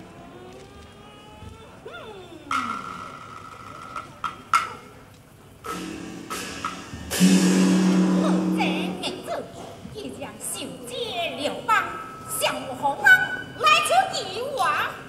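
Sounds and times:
sharp percussion knocks: 5.7s - 9.3s.

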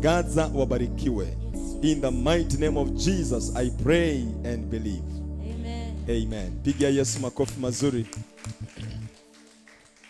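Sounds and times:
background music chord: 0.0s - 9.9s
hand claps: 5.5s - 10.0s.

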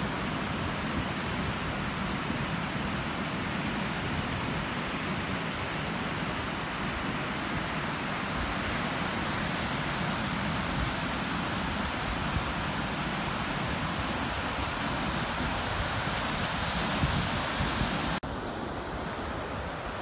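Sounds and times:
ocean surf breaking: 0.0s - 20.0s
wind on microphone: 0.0s - 20.0s.

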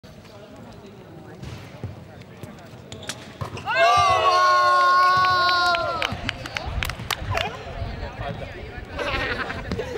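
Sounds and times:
high-pitched cheering yell: 3.6s - 6.1s.

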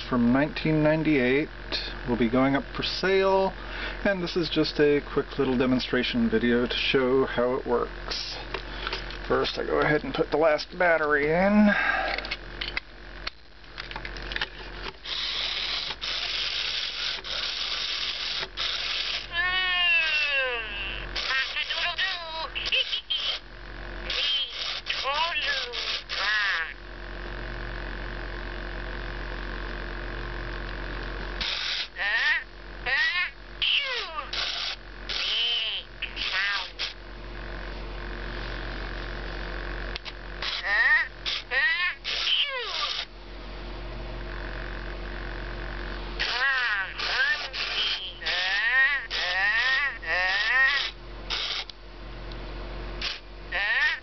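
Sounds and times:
toy motor whirring: 15.0s - 23.4s, 24.0s - 26.8s, 31.4s - 37.0s, 40.0s - 43.1s, 46.2s - 51.7s, 53.0s - 54.0s
toy warbling electronic voice: 15.0s - 23.4s, 24.0s - 26.8s, 31.4s - 37.0s, 40.4s - 43.1s, 46.2s - 51.7s, 53.0s - 54.0s
toy clicks: 34.3s - 37.0s, 40.0s - 43.1s, 46.2s - 51.7s.

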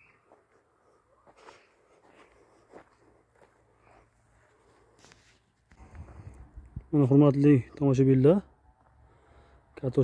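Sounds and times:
soft footsteps on loose soil: 0.0s - 9.5s.

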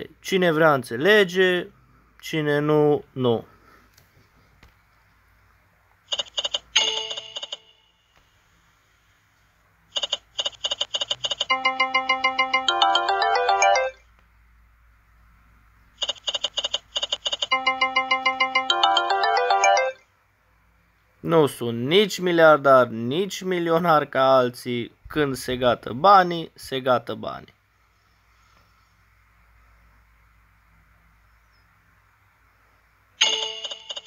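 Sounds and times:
rapid clicks of spinning reels: 10.0s - 11.5s, 16.0s - 17.5s
electronic win jingle: 11.5s - 14.0s, 17.5s - 20.0s.

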